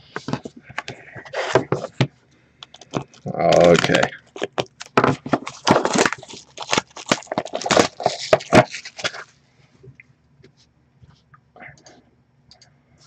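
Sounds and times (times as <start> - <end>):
cardboard box rustling: 2.9 - 9.2.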